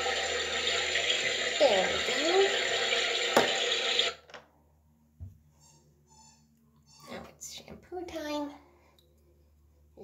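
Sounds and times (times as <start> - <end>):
running water: 0.0 - 4.2.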